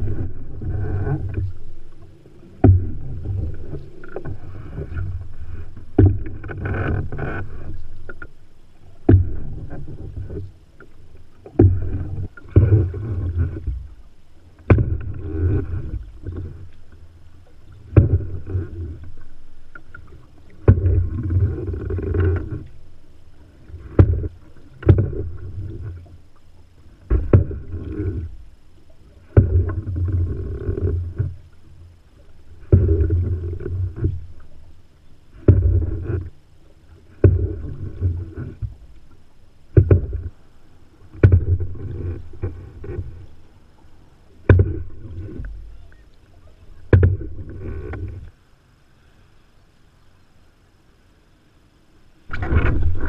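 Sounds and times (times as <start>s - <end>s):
paddle knocks: 0.0s - 16.8s, 17.4s - 22.8s, 23.4s - 26.2s, 26.8s - 28.4s, 29.0s - 31.4s, 32.5s - 34.7s, 35.3s - 36.4s, 37.0s - 40.4s, 41.1s - 43.4s, 44.4s - 48.3s, 52.3s - 53.0s
water swirling and gurgling: 0.0s - 53.0s.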